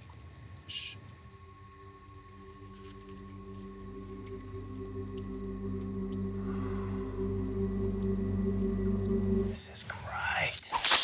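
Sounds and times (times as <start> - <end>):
low steady drone: 0.3 - 10.3.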